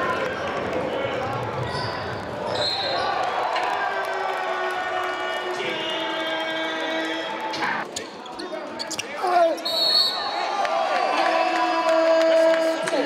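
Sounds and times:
voices in a gym: 0:00.0 - 0:13.0.

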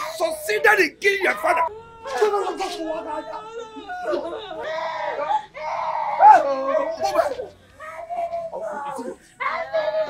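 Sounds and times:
woman wailing: 0:01.2 - 0:10.0.

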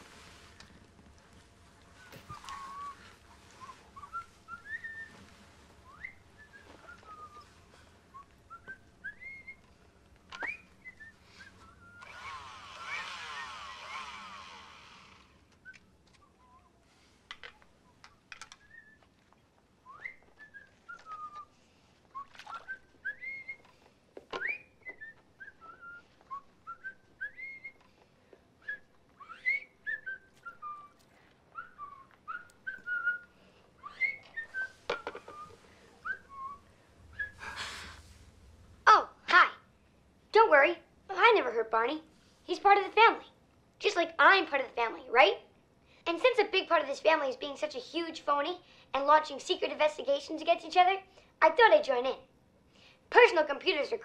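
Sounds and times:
hissing whirring noise: 0:00.0 - 0:15.6
person whistling a tune: 0:02.0 - 0:05.2, 0:05.8 - 0:09.6, 0:24.4 - 0:27.8, 0:28.6 - 0:31.0, 0:31.6 - 0:37.6.

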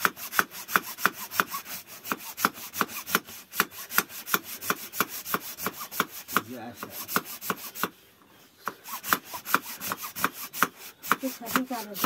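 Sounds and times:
hacksaw sawing through horn: 0:00.0 - 0:07.9, 0:08.7 - 0:12.0.

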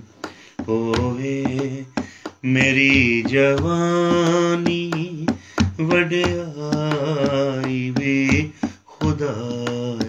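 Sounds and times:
drum strokes: 0:00.0 - 0:10.0
man singing worship song: 0:00.0 - 0:10.0.

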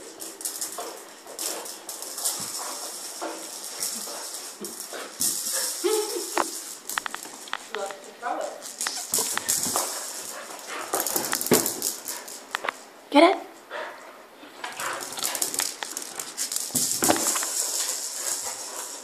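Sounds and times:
ball and claws on floorboards: 0:00.0 - 0:12.9, 0:14.4 - 0:19.0.

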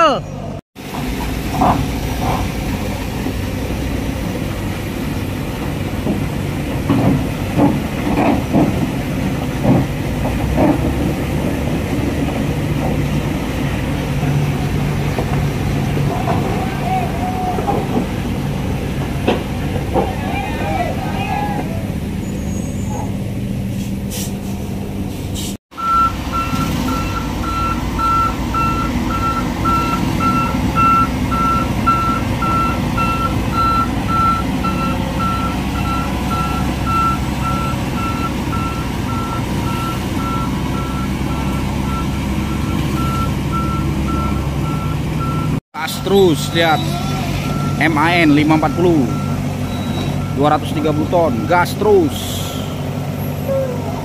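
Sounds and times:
diesel truck engine rumbling: 0:00.0 - 0:54.0
reversing alarm beeping: 0:25.8 - 0:52.8.

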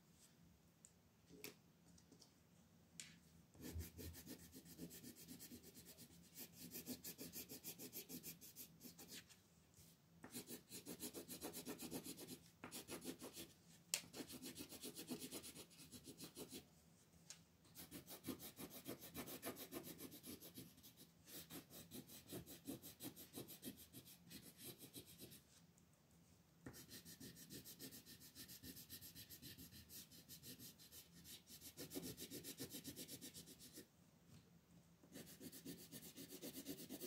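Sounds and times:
pencil shading on paper: 0:03.6 - 0:09.2, 0:10.2 - 0:13.5, 0:14.1 - 0:16.6, 0:17.8 - 0:25.4, 0:26.6 - 0:33.8, 0:35.1 - 0:37.0.

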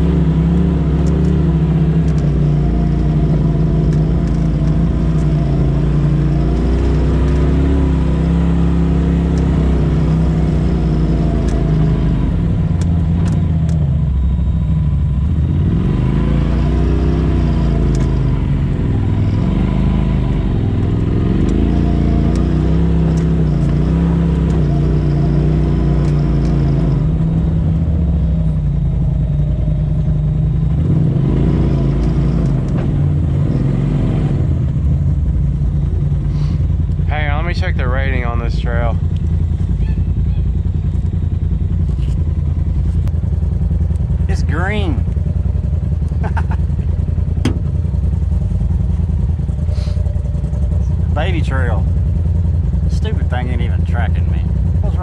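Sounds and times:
engine revving up and down: 0:00.0 - 0:14.6, 0:15.2 - 0:42.9, 0:44.0 - 0:55.0.

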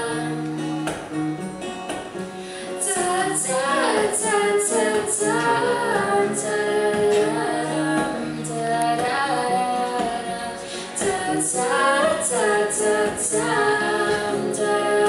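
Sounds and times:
woman singing: 0:00.0 - 0:00.7, 0:02.6 - 0:15.0
acoustic guitars: 0:00.0 - 0:15.0.

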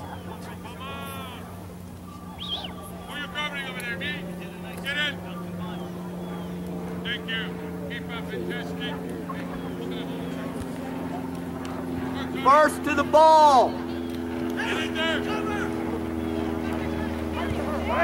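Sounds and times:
distant shouts and calls: 0:00.0 - 0:18.0
low mechanical hum: 0:00.0 - 0:18.0.

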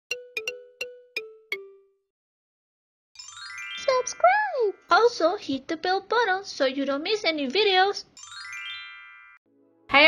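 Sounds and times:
chiming music jingle: 0:00.1 - 0:02.1, 0:03.2 - 0:05.0, 0:08.2 - 0:09.8.

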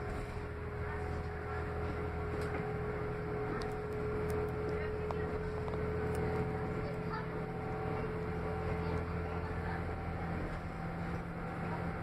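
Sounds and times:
constant high whine: 0:00.0 - 0:12.0
train low rumble: 0:00.0 - 0:12.0.

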